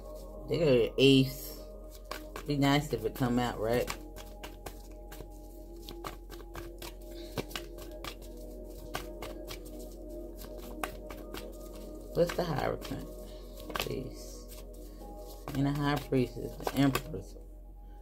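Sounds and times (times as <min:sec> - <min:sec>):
soft background music: 0:00.0 - 0:18.0
cards being shuffled: 0:01.9 - 0:17.2.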